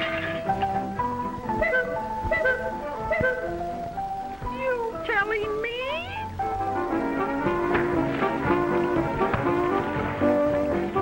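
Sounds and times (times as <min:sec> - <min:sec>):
orchestral music: 0:06.3 - 0:11.0.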